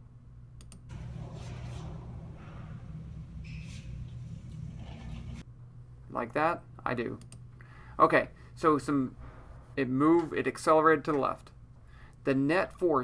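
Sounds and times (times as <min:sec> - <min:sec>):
low room hum: 0:00.0 - 0:13.0.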